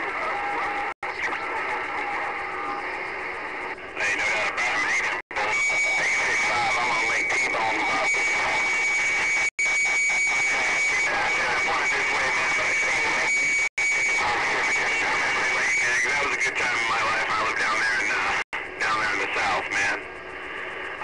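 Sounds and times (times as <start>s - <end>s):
garbled radio voices: 0.0s - 21.0s.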